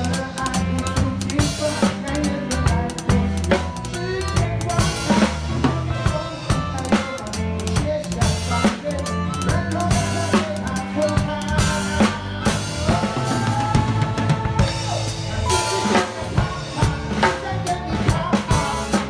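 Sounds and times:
backing song: 0.0s - 19.0s
drum kit groove: 0.0s - 19.0s.

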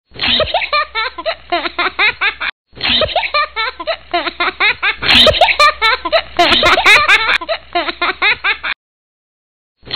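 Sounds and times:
person laughing hard: 0.2s - 8.8s.

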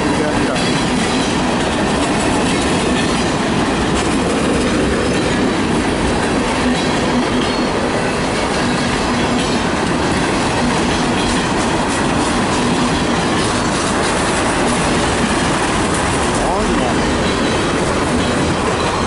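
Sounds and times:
steel wheels rolling on rails: 0.0s - 19.0s.

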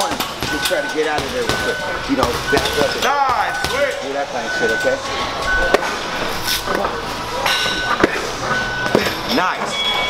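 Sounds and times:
gym background noise: 0.0s - 10.0s.

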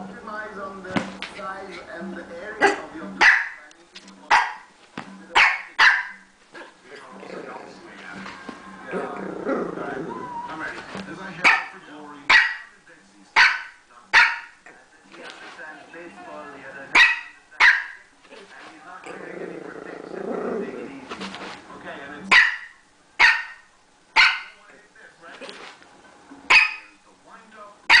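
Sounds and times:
puppy barking: 2.6s - 3.6s, 4.3s - 4.7s, 5.4s - 6.3s, 11.4s - 12.7s, 13.4s - 14.6s, 16.9s - 18.1s, 22.3s - 24.6s, 26.5s - 26.9s.

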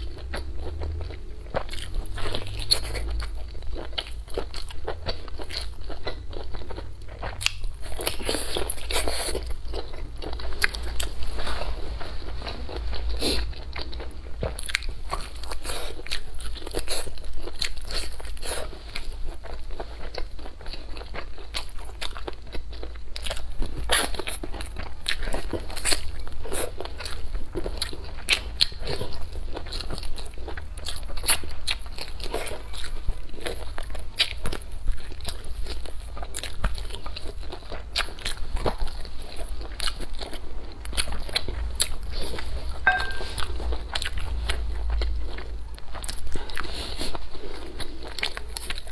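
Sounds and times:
biting and chewing crunches: 0.0s - 48.9s.

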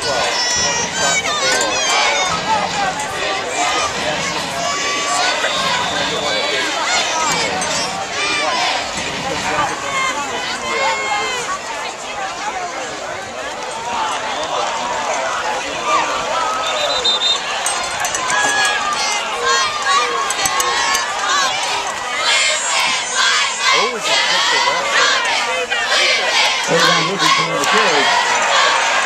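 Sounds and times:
crowd cheering and shouting: 0.0s - 29.0s.

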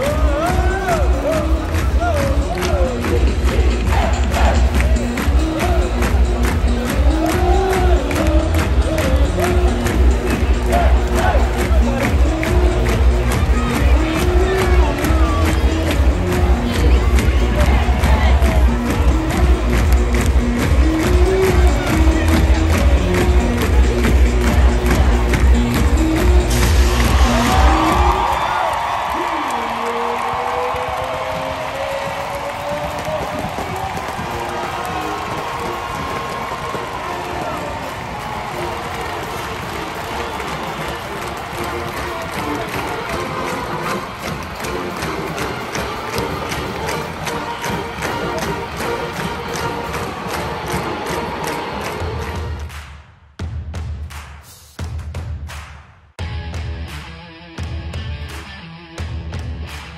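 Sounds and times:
loud music with heavy bass beat: 0.0s - 28.8s, 53.4s - 59.9s
stadium crowd cheering: 0.0s - 53.1s.

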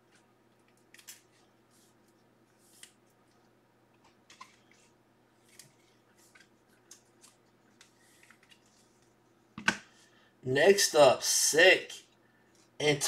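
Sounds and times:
cards rustling and sliding: 0.8s - 3.2s, 4.3s - 9.2s.

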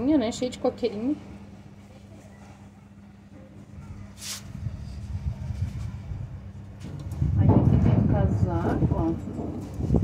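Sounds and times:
wind buffeting microphone: 3.8s - 10.0s
short rustle: 4.1s - 4.5s.

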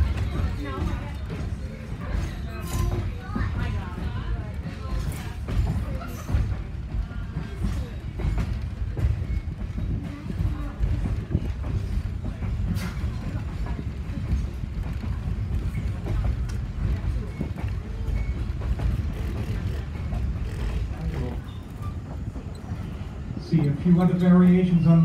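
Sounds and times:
faint voices: 0.0s - 25.0s
railroad car rumbling on track: 0.0s - 25.0s.

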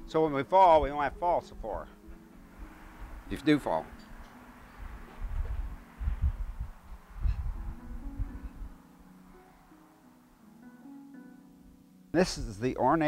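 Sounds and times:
soft guitar music: 0.0s - 13.0s.

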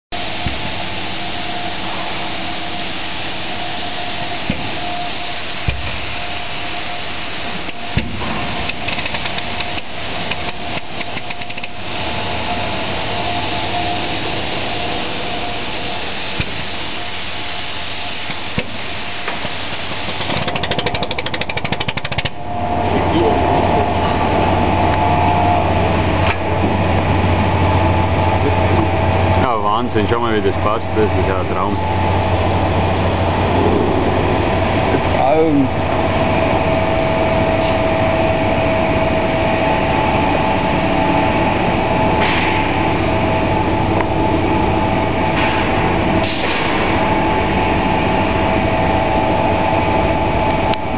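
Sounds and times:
industrial machinery running: 0.1s - 50.9s
low hum: 0.1s - 50.9s
sharp knocks and clicks: 8.0s - 11.8s, 20.1s - 22.4s.

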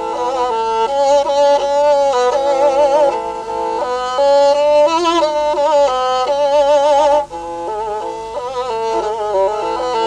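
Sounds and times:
bowed fiddle melody: 0.0s - 10.0s.

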